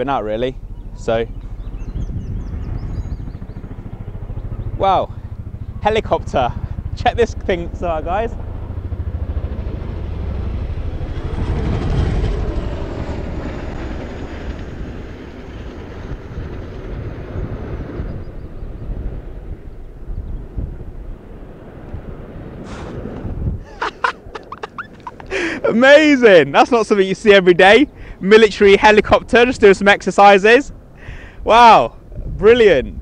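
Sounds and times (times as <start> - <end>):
helicopter engine noise: 0.0 - 33.0
helicopter rotors beating: 0.0 - 33.0.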